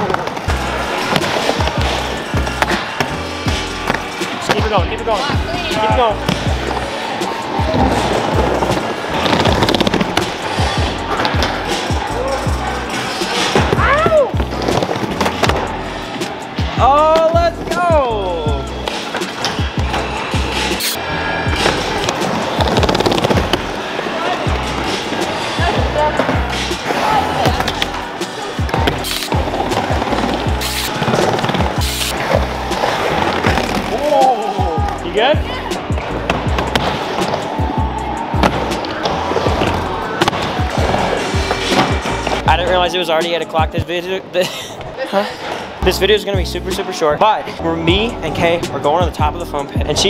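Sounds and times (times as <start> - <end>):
music playing: 0.0 - 50.0
skateboard wheels rolling on wood: 5.7 - 12.0, 21.5 - 34.3.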